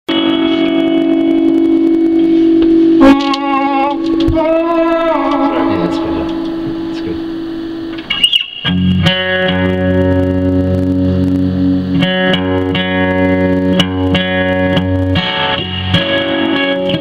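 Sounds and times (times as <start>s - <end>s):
steady held note: 0.1s - 15.9s
wavering vibrato voice-like notes: 2.2s - 8.7s.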